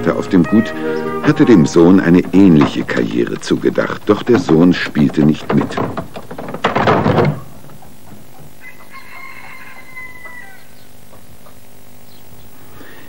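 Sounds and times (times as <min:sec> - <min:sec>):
rooster crowing: 0:08.6 - 0:10.9.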